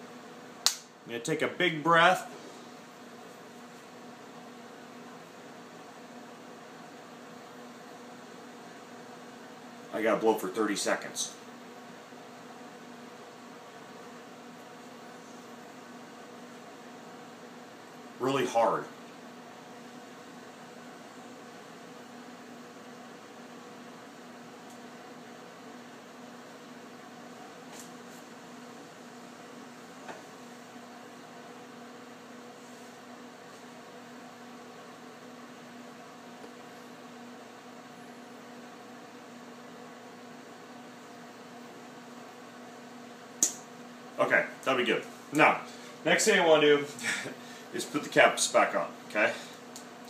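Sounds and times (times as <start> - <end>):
room hum with low tone: 0.0 - 50.0.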